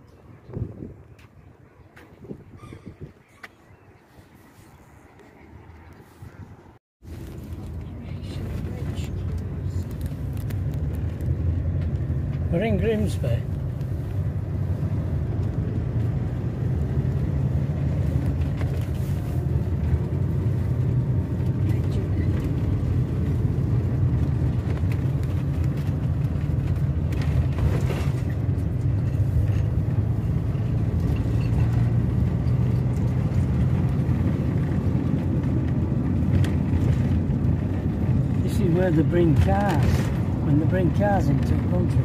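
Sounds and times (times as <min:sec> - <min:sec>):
engine and road rumble: 0:00.0 - 0:42.0.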